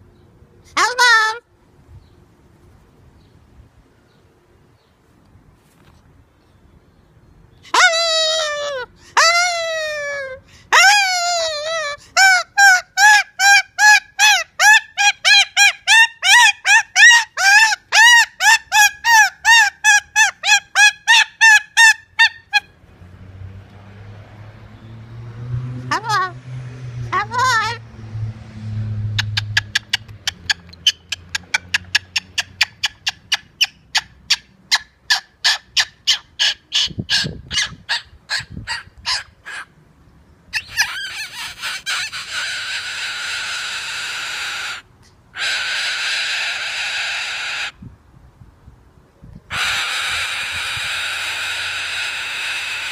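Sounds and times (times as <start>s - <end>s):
cockatoo honking squawks: 40.5s - 47.8s, 49.5s - 52.9s
cockatoo harsh screech: 40.6s - 47.8s, 49.5s - 52.9s.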